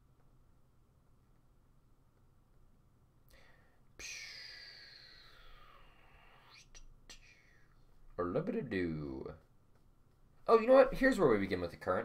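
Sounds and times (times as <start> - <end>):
person breathy exhale: 3.3 - 7.8.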